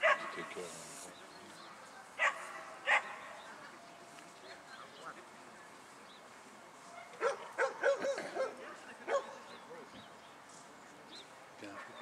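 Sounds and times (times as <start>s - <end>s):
dog yipping barks: 0.0s - 0.4s, 2.2s - 3.2s, 7.2s - 9.4s.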